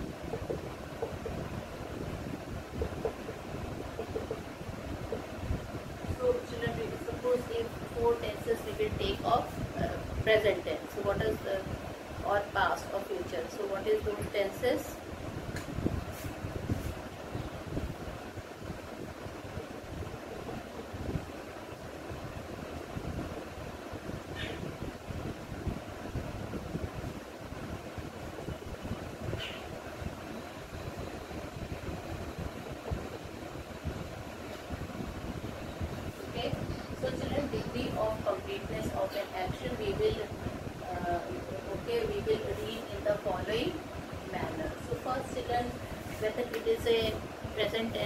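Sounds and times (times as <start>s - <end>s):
rushing background noise: 0.0s - 48.0s.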